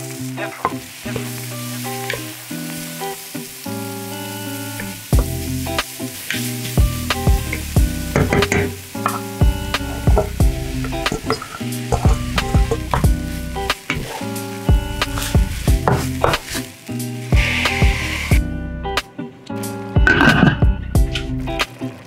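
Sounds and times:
onions sizzling in a pot: 0.0 - 19.0, 19.6 - 22.0
bass line and steady beat: 5.2 - 5.8, 6.8 - 8.5, 9.4 - 11.1, 12.0 - 13.7, 14.7 - 16.3, 20.0 - 21.6.

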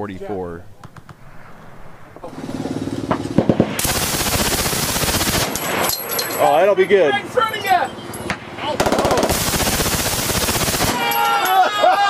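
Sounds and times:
machine gun firing: 2.8 - 5.9, 8.8 - 11.2.

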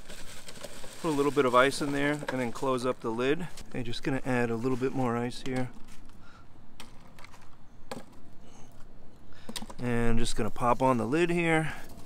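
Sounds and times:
ice cubes clinking into cooler: 0.0 - 2.9.

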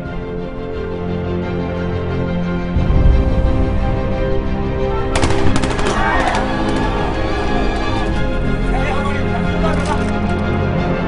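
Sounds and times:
film score music: 0.0 - 11.0
automatic rifle fire: 5.2 - 8.0.

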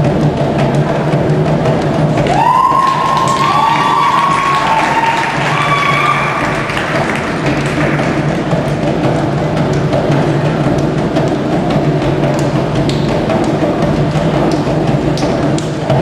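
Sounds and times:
high held cries: 2.3 - 7.1.

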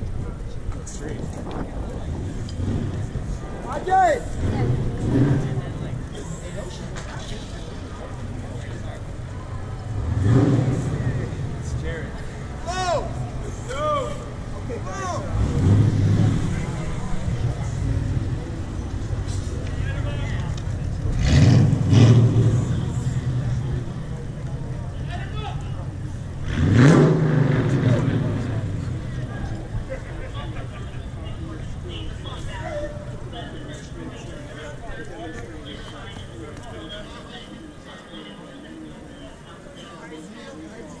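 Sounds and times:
car engines revving: 0.0 - 36.6
people calling in street: 3.2 - 5.3, 12.2 - 21.0, 21.9 - 26.5.

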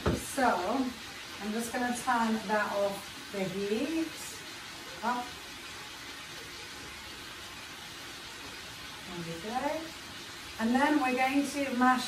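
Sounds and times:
vegetables sizzling in a frying pan: 0.0 - 12.0.

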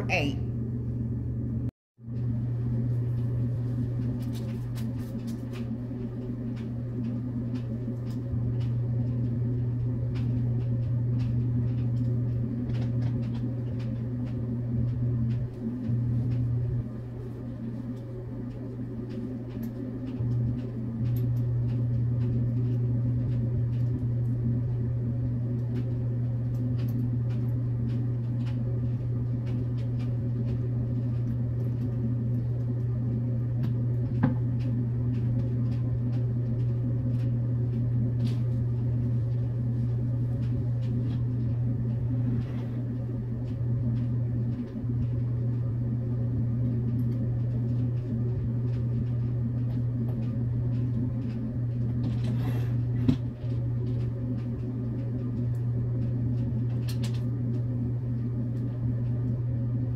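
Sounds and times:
low hum: 0.0 - 59.9.

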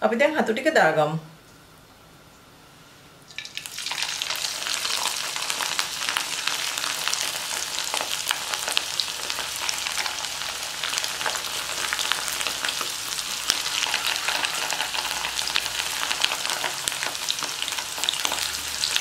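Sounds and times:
battered food deep-frying in oil: 3.3 - 19.0.

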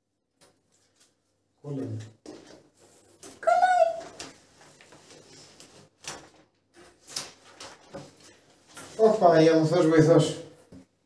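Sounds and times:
plastic sheet rustling and crackling: 0.7 - 9.8.

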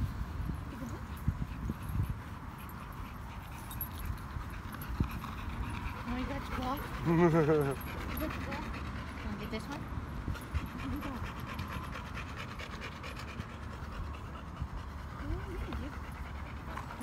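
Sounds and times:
dog panting: 0.7 - 17.0.

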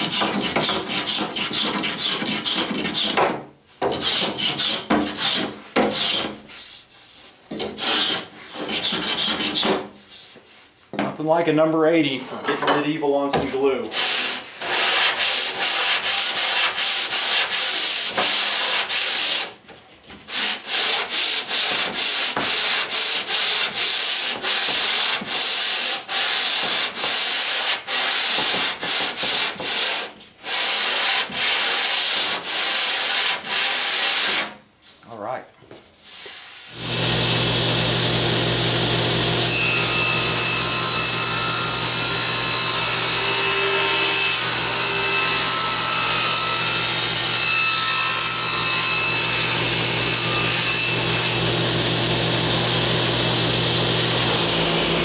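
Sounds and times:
hand scraper rasping on wood: 0.0 - 3.2, 7.6 - 9.8, 13.9 - 19.6, 20.3 - 34.5.

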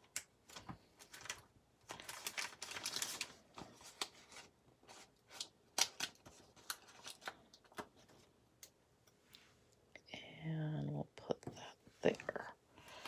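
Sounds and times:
sticker sheets crinkling: 0.0 - 8.3
person's voice: 10.0 - 13.0.

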